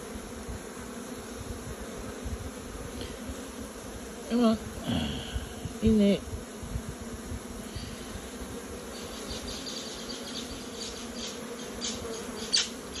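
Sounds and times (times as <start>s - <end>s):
honey bees buzzing: 0.0s - 13.0s.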